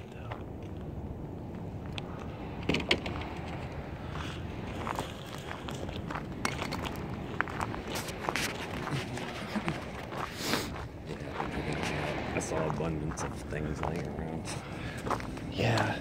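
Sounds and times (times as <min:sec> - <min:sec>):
steady low rumble: 0:00.0 - 0:16.0
footsteps on gravel: 0:04.1 - 0:16.0.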